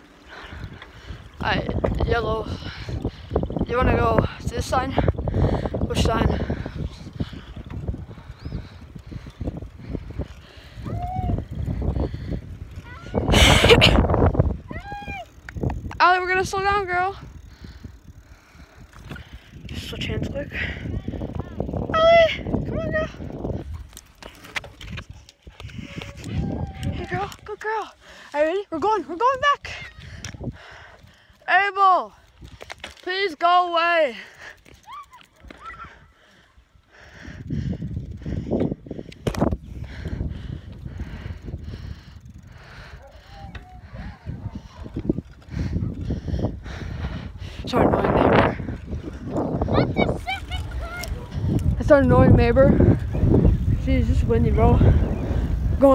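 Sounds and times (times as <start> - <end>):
wind buffeting microphone: 0.0 - 33.0, 33.9 - 55.9
bicycle rolling over asphalt: 0.0 - 55.9.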